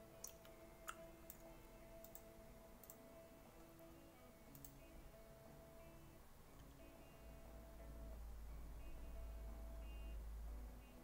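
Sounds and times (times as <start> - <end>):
computer mouse clicks: 0.2 - 3.0, 4.5 - 4.8.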